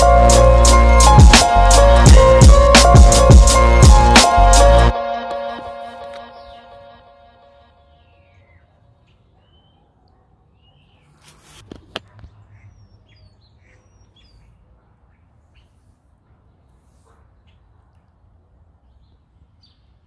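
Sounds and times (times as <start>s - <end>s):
background music: 0.0s - 8.0s
birds chirping: 5.6s - 7.0s, 7.6s - 11.2s, 12.0s - 17.9s.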